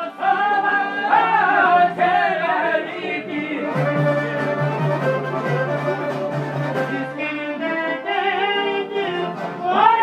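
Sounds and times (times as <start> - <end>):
sustained folk melody: 0.0 - 10.0.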